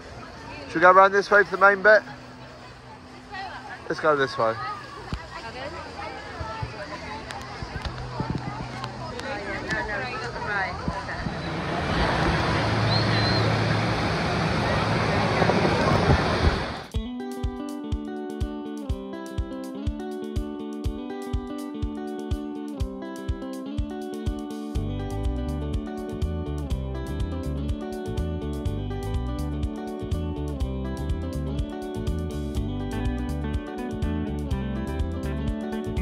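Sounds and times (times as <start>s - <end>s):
crowd chatter: 0.0s - 16.9s
music with plucked guitar and beat: 16.9s - 36.0s.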